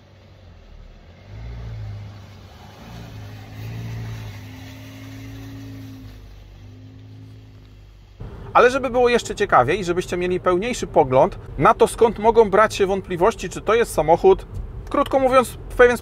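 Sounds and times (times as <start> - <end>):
car engine driving past: 0.0 - 12.0.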